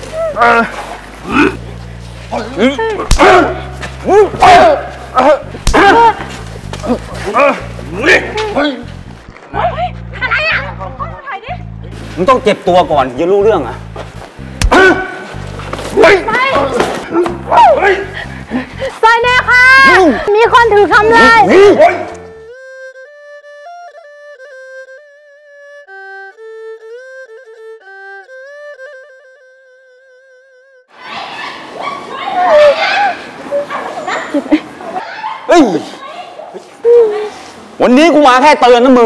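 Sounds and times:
distressed cries and wails: 0:00.0 - 0:01.8, 0:02.5 - 0:08.9, 0:16.0 - 0:24.0
commotion of voices: 0:00.0 - 0:12.0, 0:14.6 - 0:22.3
elderly woman yelping in distress: 0:17.1 - 0:18.2.

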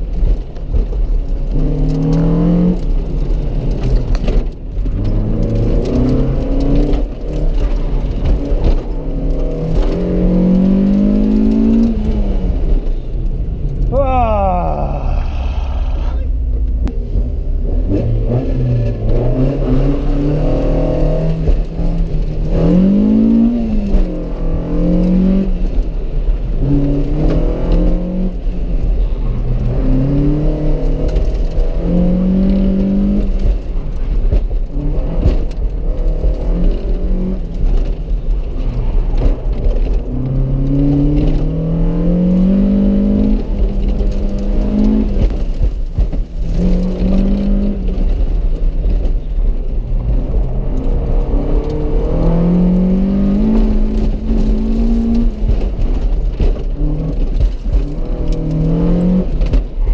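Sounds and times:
road and wind rumble: 0:00.0 - 0:59.9
car engine revving: 0:00.2 - 0:59.9.

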